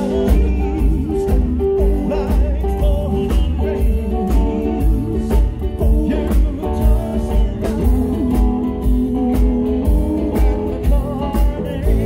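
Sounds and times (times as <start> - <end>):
bass: 0.0 - 12.0
drum kit: 0.0 - 12.0
man singing: 0.0 - 12.0.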